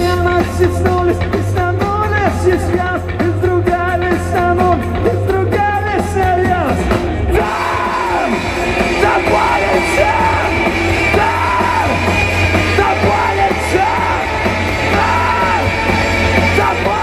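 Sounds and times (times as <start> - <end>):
live rock band playing: 0.0 - 17.0
person singing: 0.0 - 17.0.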